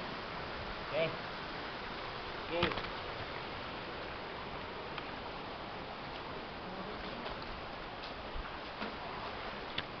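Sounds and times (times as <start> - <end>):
stream water rushing: 0.0 - 10.0.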